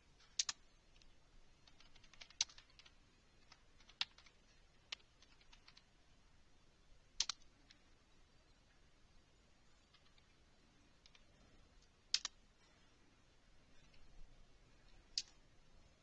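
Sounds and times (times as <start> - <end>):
keyboard typing: 0.2 - 5.8, 7.2 - 7.4
sharp keyboard clicks: 0.2 - 5.8, 7.2 - 7.8, 12.1 - 12.4.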